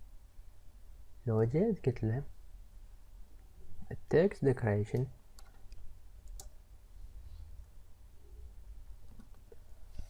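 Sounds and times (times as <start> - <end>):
low steady hum: 0.0 - 10.0
computer keys clicking: 4.9 - 6.6.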